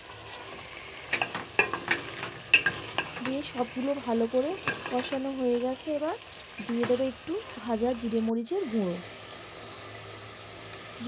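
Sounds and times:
curry sizzling in a pot: 0:00.0 - 0:11.0.

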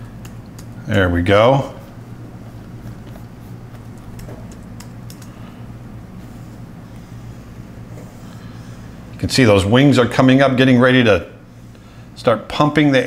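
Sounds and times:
low electrical hum: 0:00.0 - 0:13.0
keyboard and tablet clicks: 0:03.7 - 0:05.3.

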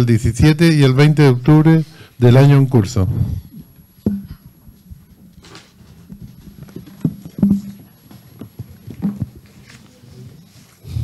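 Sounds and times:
loud thumps: 0:04.0 - 0:04.5, 0:07.0 - 0:07.9
knocks on a table: 0:04.1 - 0:04.4, 0:07.1 - 0:07.8.

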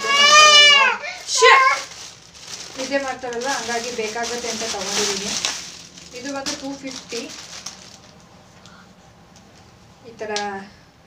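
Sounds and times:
woman speaking: 0:00.0 - 0:02.0, 0:02.7 - 0:07.4, 0:10.0 - 0:10.8.

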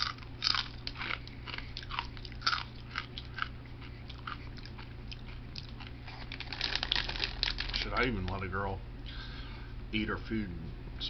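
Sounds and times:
person chewing crunchy food: 0:00.0 - 0:07.9.

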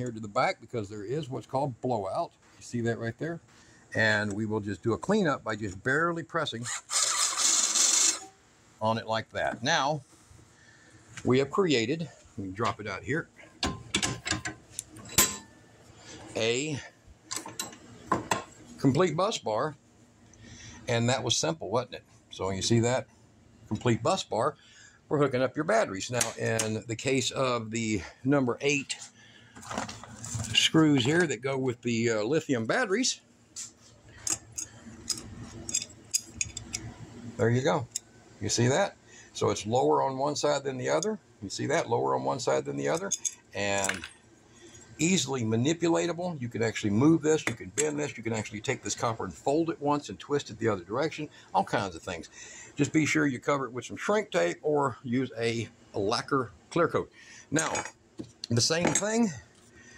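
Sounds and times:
drill bit scraping metal: 0:06.6 - 0:08.3.

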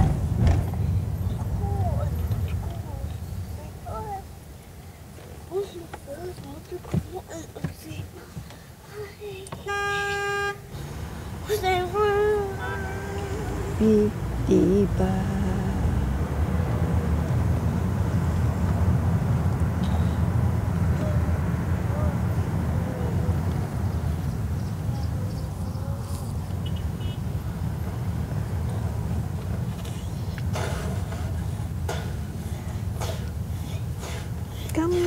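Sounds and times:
car engine and tyres rumbling: 0:00.0 - 0:35.0.

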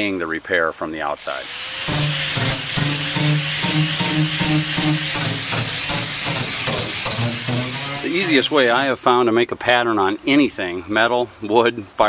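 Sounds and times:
angle grinder grinding: 0:01.2 - 0:09.0
music with low notes: 0:01.9 - 0:08.3.

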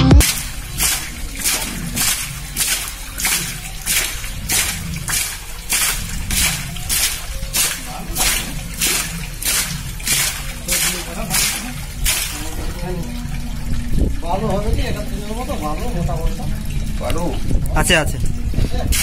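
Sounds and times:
muddy water gushing from pipe: 0:00.2 - 0:19.0.

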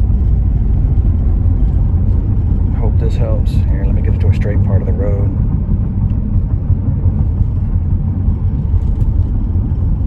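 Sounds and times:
car engine and tyres rumbling: 0:00.0 - 0:10.0.

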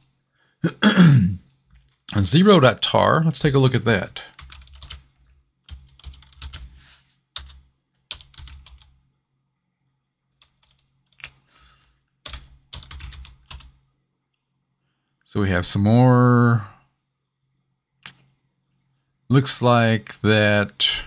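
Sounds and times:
computer keyboard typing: 0:04.3 - 0:06.7, 0:07.4 - 0:09.0, 0:10.4 - 0:11.4, 0:12.2 - 0:13.8.

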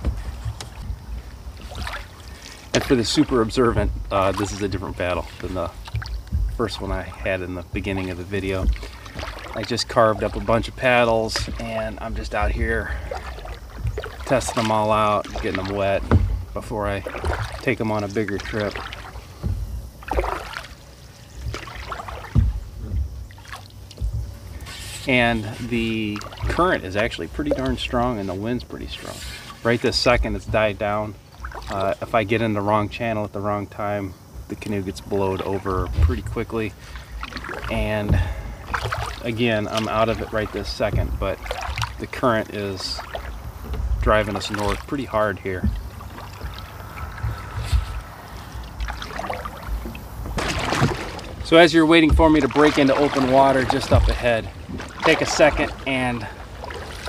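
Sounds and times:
low wind rumble on microphone: 0:00.0 - 0:14.6, 0:21.0 - 0:28.8, 0:43.2 - 0:52.7
paddle splashing through water: 0:00.0 - 0:57.0.

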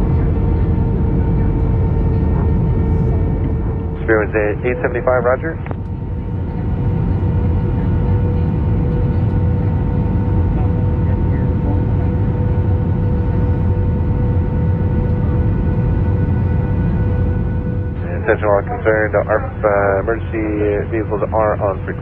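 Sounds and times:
constant tone: 0:00.0 - 0:22.0
engine and airflow rumble: 0:00.0 - 0:22.0.

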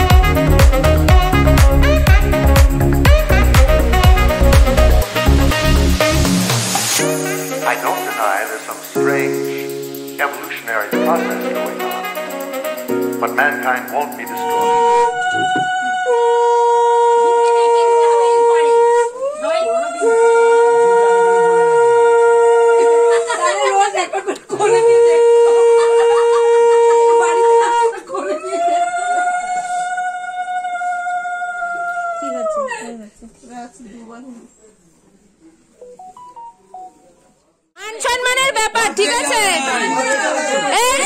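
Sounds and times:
conch shell blown: 0:00.0 - 0:09.8, 0:11.3 - 0:13.4, 0:20.1 - 0:23.2.

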